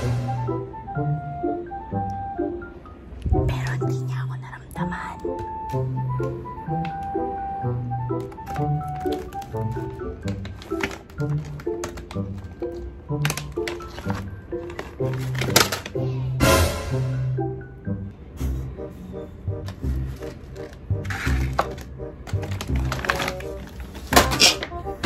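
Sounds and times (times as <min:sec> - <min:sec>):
light background tune: 0:00.0 - 0:25.0.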